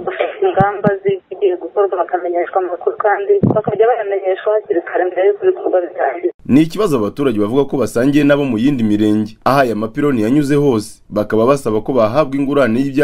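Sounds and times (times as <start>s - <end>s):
woman speaking over telephone: 0.0s - 6.4s.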